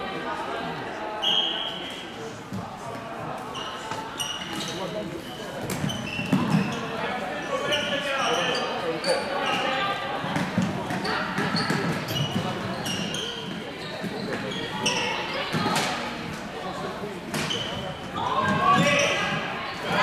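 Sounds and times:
shoes squeaking on court floor: 3.4s - 20.0s.

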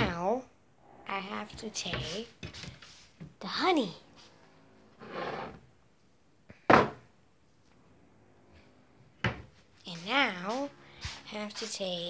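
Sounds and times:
rustling scrape: 1.6s - 3.2s, 4.1s - 5.6s, 9.6s - 11.8s.

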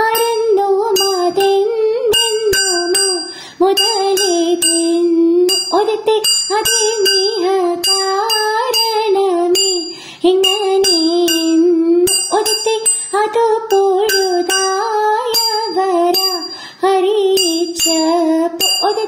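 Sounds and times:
small hand cymbals striking: 0.0s - 19.0s
woman singing ornamented melody: 0.0s - 19.0s.

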